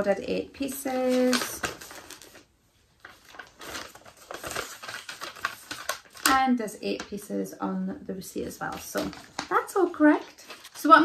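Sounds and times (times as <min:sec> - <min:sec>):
paper receipt rustling and crinkling: 0:00.0 - 0:07.4, 0:08.2 - 0:11.0.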